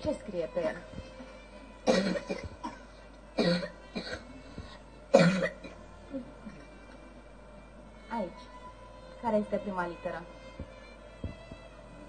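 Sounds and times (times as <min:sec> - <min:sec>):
person coughing: 0:01.9 - 0:04.3, 0:05.2 - 0:05.8.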